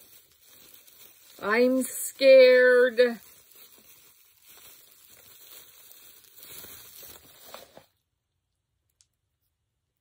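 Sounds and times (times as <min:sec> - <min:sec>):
bubble wrap crinkling: 0:00.0 - 0:08.1.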